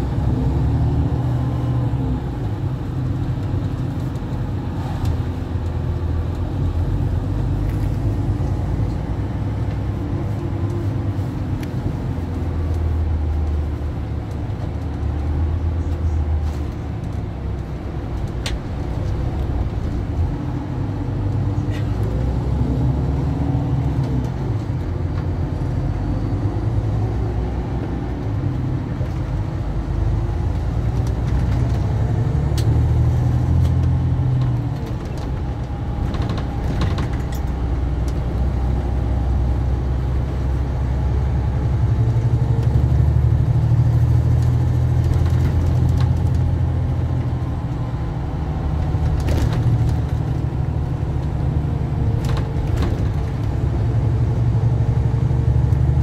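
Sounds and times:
coach engine and road rumble: 0:00.0 - 0:56.0.

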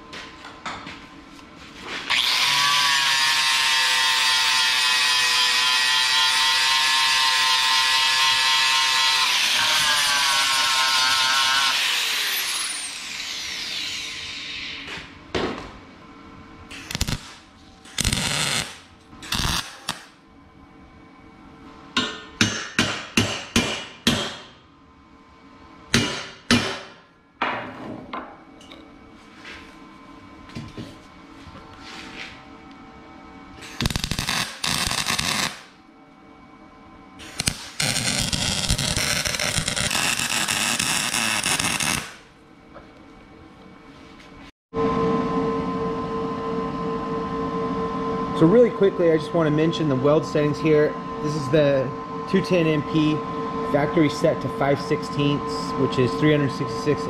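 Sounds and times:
welder running a weld: 0:02.0 - 0:15.1, 0:16.7 - 0:20.2, 0:33.6 - 0:35.8, 0:37.2 - 0:42.4, 0:47.8 - 0:57.0
angle grinder spinning down: 0:07.6 - 0:14.8, 0:18.0 - 0:20.0, 0:37.4 - 0:42.2
hammer striking steel: 0:22.0 - 0:24.6, 0:25.9 - 0:27.0.

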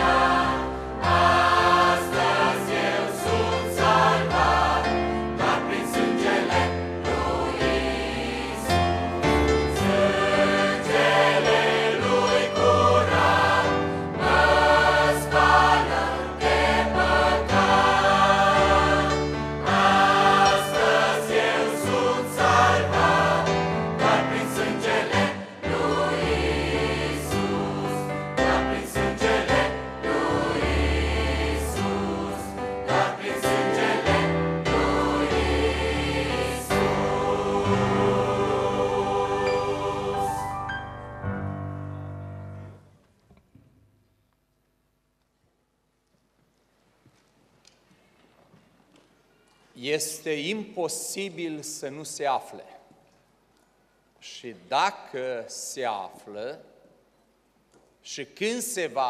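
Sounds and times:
choir singing a hymn: 0:00.0 - 0:41.6
piano: 0:00.0 - 0:44.3.

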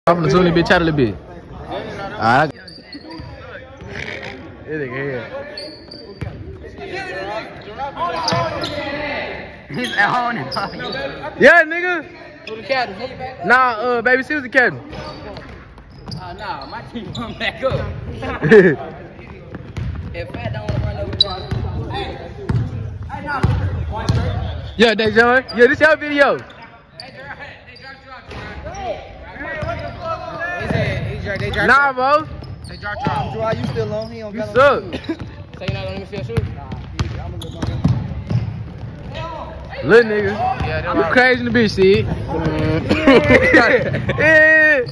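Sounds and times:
players calling out: 0:00.2 - 0:44.9
basketball bouncing on wooden floor: 0:19.2 - 0:21.7, 0:35.2 - 0:39.7.

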